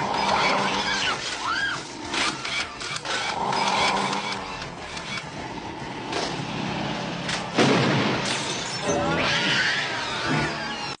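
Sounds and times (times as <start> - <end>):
creature squeals and shrieks: 0.1 - 2.0, 8.8 - 11.0.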